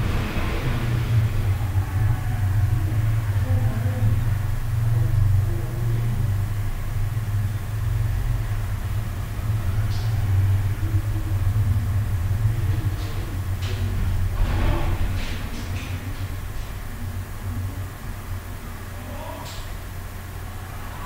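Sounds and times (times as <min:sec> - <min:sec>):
steady low rumble: 0:00.0 - 0:21.0.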